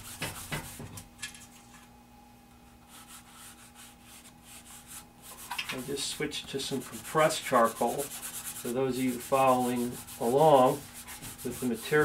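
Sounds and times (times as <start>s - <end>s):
fingers rubbing charcoal on paper: 2.9s - 12.0s.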